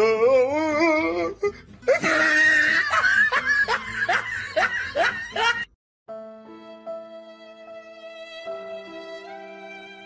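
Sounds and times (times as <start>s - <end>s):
person laughing: 1.9s - 5.7s.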